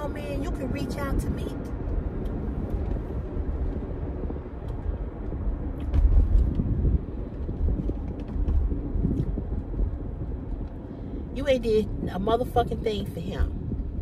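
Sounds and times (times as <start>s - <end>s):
car road and engine rumble: 0.0s - 14.0s.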